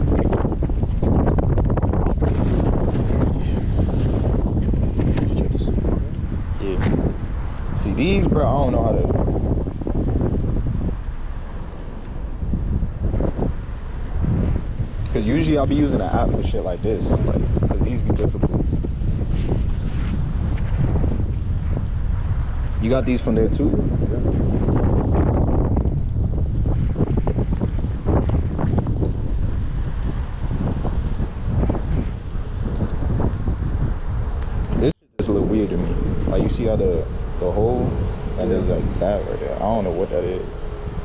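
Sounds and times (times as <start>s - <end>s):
wind buffeting microphone: 0.0s - 41.0s.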